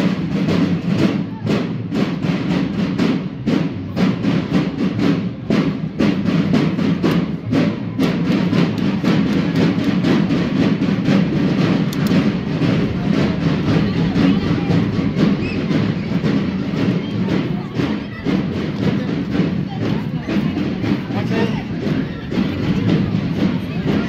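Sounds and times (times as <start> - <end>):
parade drums beating: 0.0 - 24.0.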